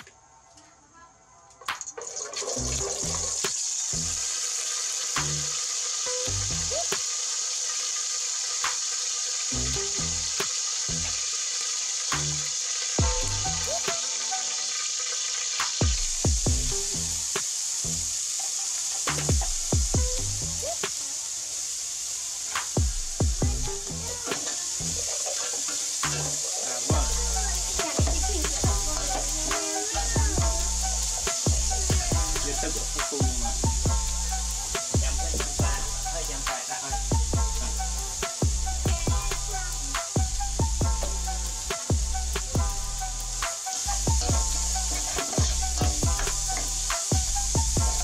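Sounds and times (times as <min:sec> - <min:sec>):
oil sizzling in a pot: 0:01.6 - 0:48.0
background music with beat: 0:05.1 - 0:07.2, 0:12.0 - 0:21.0, 0:22.5 - 0:48.0.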